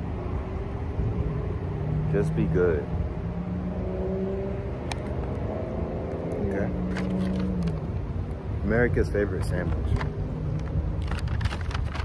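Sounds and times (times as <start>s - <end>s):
paper bag crinkling: 9.8s - 12.0s.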